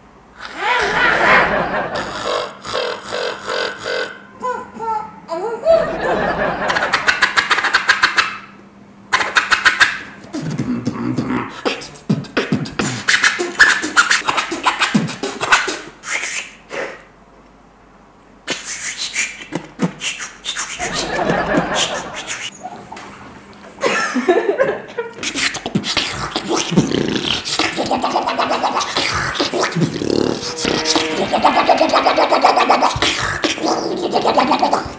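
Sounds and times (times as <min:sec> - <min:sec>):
mouth beatbox scratching: 0:02.0 - 0:04.2, 0:06.7 - 0:08.5, 0:09.1 - 0:17.1, 0:18.4 - 0:23.6, 0:25.1 - 0:34.9.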